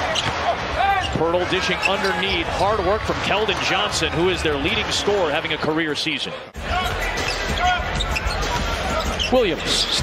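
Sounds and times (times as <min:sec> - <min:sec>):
arena crowd hum: 0:00.0 - 0:10.0.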